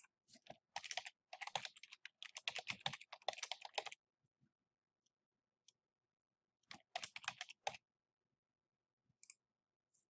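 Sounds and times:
typing on computer keyboard: 0.4s - 4.0s, 6.7s - 7.8s.

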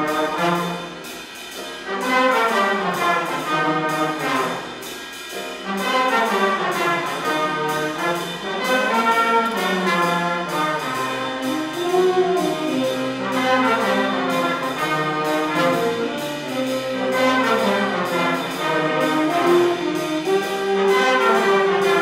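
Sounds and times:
horn sections playing: 0.0s - 1.2s, 1.8s - 4.9s, 5.6s - 22.0s
drum kit steady beat: 0.0s - 22.0s
piano: 0.0s - 22.0s.

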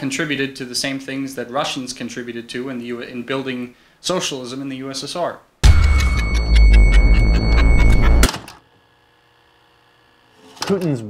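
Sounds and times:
steady high tone: 5.6s - 8.3s.

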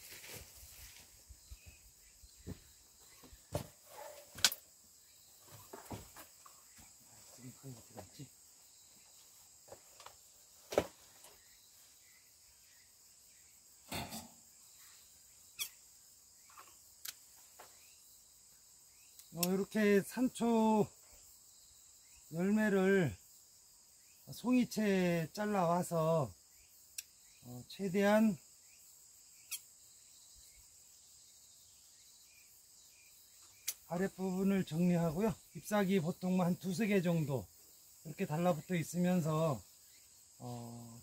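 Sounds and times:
rustling leafy sprays: 0.0s - 1.2s
insect chorus: 0.0s - 41.0s.

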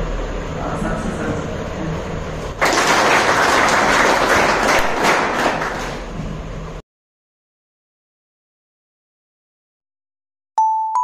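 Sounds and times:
audience applauding: 2.6s - 6.1s.

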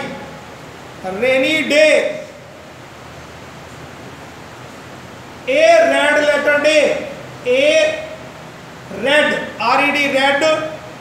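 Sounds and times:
man speaking loudly: 0.0s - 0.3s, 1.0s - 2.4s, 5.5s - 8.3s, 8.9s - 10.9s
room noise hiss: 0.0s - 11.0s.

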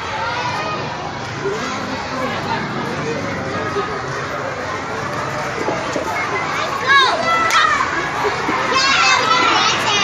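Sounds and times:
background hubbub: 0.0s - 10.0s
children calling and chattering: 0.0s - 10.0s
child shouting: 8.7s - 10.0s.

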